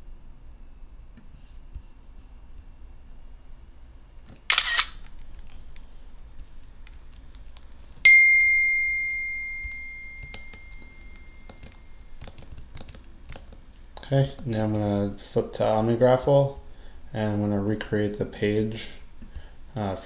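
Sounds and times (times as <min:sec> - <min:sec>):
camera shutter sound effect: 0:04.5 - 0:05.0
bright computer chime: 0:08.1 - 0:11.8.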